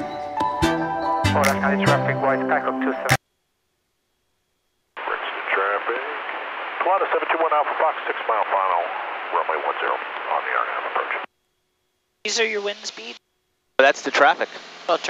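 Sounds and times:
voice over radio: 1.4 - 3.2, 5.0 - 6.2, 6.8 - 11.3.

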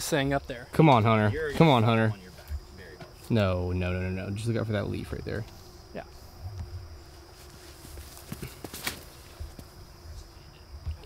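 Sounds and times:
faint insect drone: 0.0 - 11.0.

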